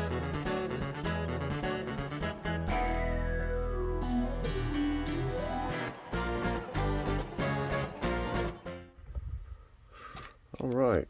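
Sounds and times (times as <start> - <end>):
man talking: 10.6 - 11.0.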